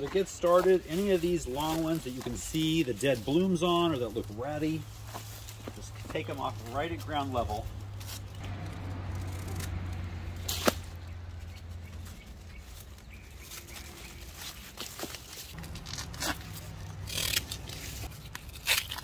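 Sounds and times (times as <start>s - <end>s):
rustling stems and dry leaves: 0.0s - 19.0s
hand pruners snipping: 5.6s - 11.0s, 14.5s - 19.0s.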